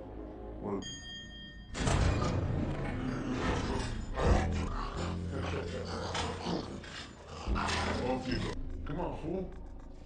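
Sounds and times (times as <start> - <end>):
zombie growling: 2.3 - 10.0.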